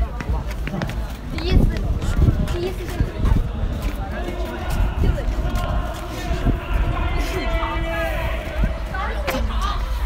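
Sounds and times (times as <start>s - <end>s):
footsteps walking quickly: 0.0s - 9.6s
indistinct voices: 0.0s - 10.0s.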